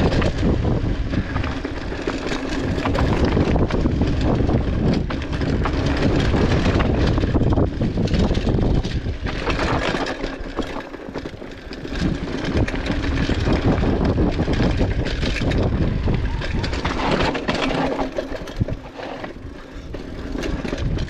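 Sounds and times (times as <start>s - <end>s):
bike rattling and clattering: 0.0s - 21.0s
tyres rumbling over dirt: 0.0s - 21.0s
wind buffeting microphone: 0.0s - 21.0s.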